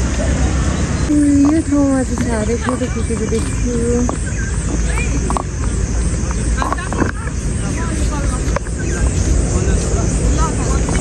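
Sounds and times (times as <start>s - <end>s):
people chattering: 0.0s - 11.0s
steady low rumble: 0.0s - 11.0s.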